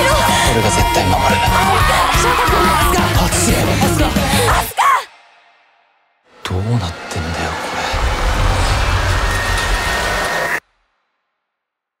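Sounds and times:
dense rumbling noise: 7.9 - 10.6.

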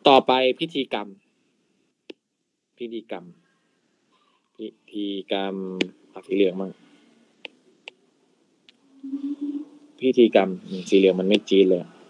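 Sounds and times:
man humming: 9.0 - 10.0.

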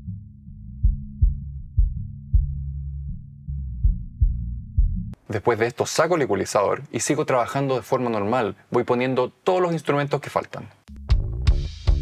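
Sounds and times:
sustained bass line: 0.0 - 5.2, 11.0 - 12.0.

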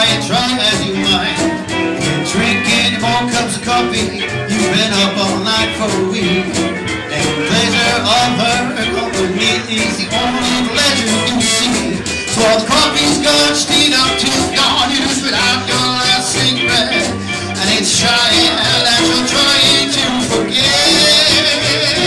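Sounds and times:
country band playing: 0.0 - 22.0
man singing: 0.0 - 22.0.

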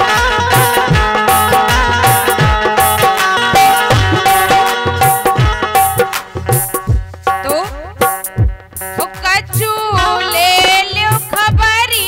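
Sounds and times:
hand drum bass strokes: 0.0 - 11.8
harmonium: 0.0 - 12.0
girl singing: 9.0 - 12.0.

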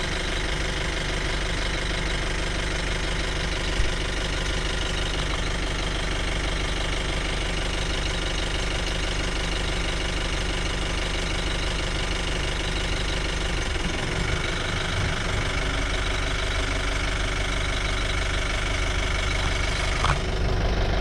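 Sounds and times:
jeep engine idling: 0.0 - 21.0.

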